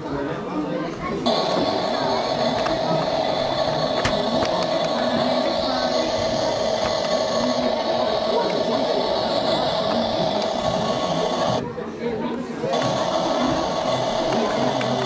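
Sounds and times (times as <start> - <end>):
toy tank electric motor whirring: 1.2 - 11.6, 12.7 - 15.0.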